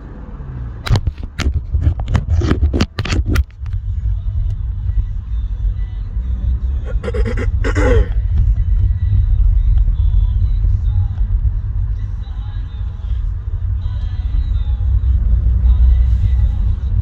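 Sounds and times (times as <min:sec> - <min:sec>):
car driving rumble: 0:00.0 - 0:17.0.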